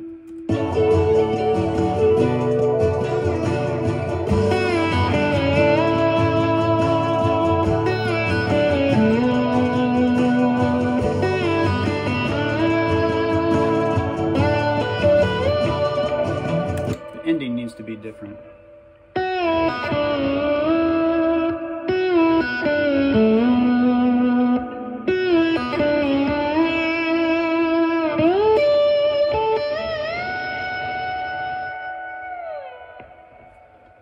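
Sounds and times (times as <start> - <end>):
backing track: 0.0 - 34.0
electric slide guitar melody: 0.0 - 34.0.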